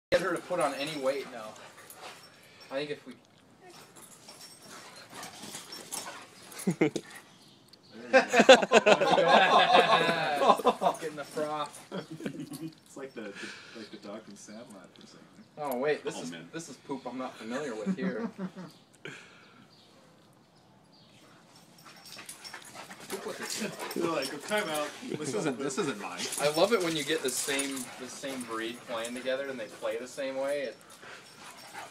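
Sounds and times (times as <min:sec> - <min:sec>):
dogs scuffling: 0:00.1 - 0:03.0, 0:03.6 - 0:07.3, 0:09.8 - 0:13.0, 0:21.1 - 0:31.9
dogs play-wrestling noises: 0:00.2 - 0:07.5, 0:21.0 - 0:31.9.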